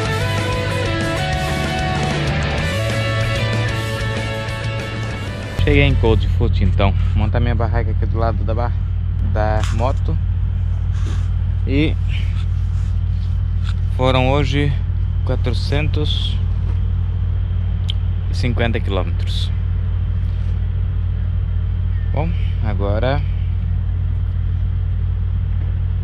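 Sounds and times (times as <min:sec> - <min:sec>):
engine idling: 0:00.0 - 0:26.0
low mechanical drone: 0:00.0 - 0:26.0.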